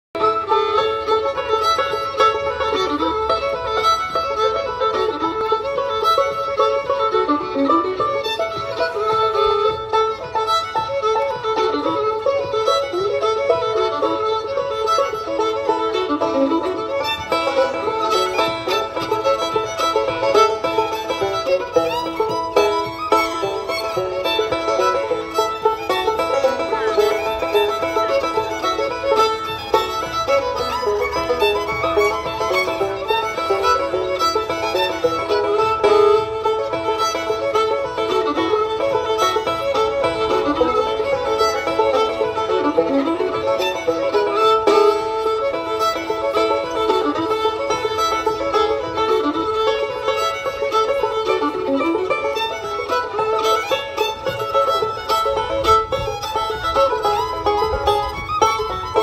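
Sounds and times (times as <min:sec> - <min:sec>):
fiddle melody with slides: 0:00.0 - 0:59.0
plucked strings: 0:00.2 - 0:59.0.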